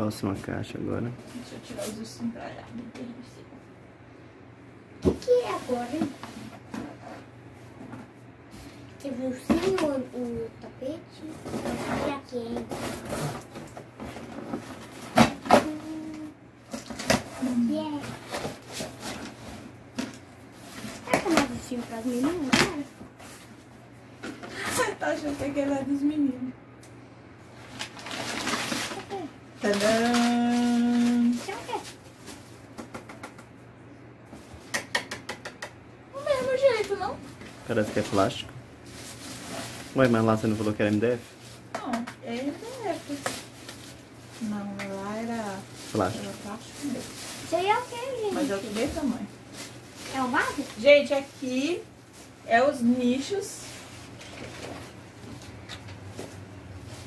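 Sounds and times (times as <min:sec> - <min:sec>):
plastic film crinkling: 0:27.6 - 0:32.6, 0:37.7 - 0:41.6, 0:42.3 - 0:52.4.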